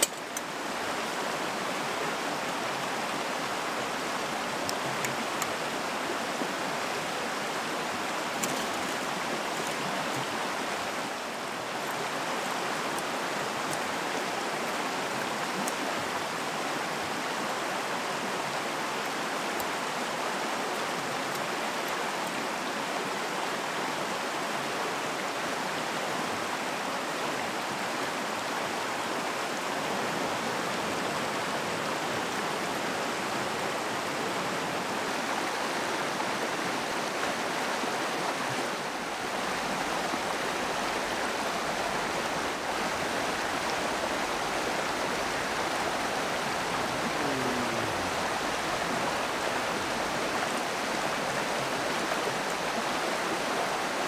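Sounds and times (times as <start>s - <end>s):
stream flowing over stones: 0.0s - 54.0s.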